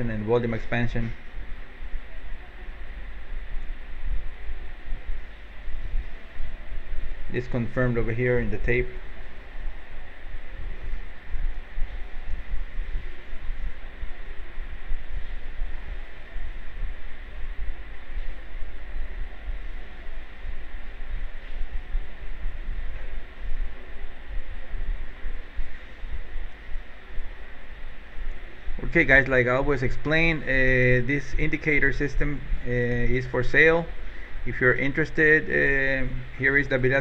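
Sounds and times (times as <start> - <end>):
constant hiss: 0.0 - 37.0
faint high whine: 0.0 - 37.0.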